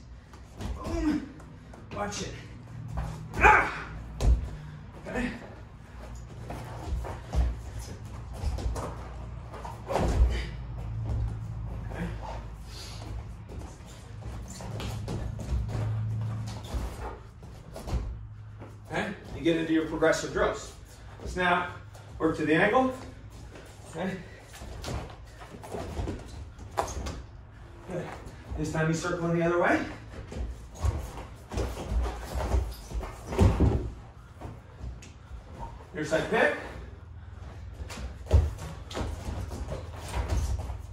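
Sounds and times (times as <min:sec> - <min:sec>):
steady low hum: 0:00.0 - 0:40.9
bodies thudding on foam mats: 0:02.8 - 0:05.4, 0:06.3 - 0:12.4, 0:13.1 - 0:18.6, 0:30.1 - 0:35.0, 0:37.6 - 0:40.9.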